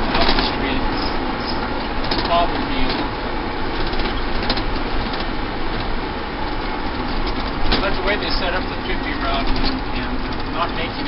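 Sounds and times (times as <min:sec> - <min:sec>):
bus engine and road noise: 0:00.0 - 0:11.0.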